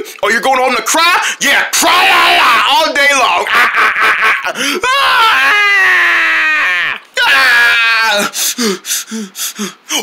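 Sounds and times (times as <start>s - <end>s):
person screaming: 1.8s - 8.4s.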